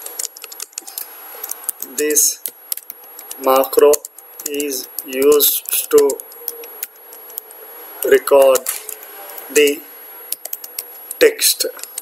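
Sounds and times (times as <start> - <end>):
keyboard keystroke clicks: 0.0 - 7.5.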